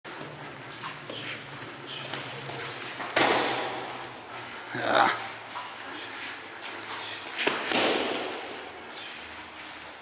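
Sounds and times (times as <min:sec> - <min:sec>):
light footwork: 0:00.1 - 0:10.0.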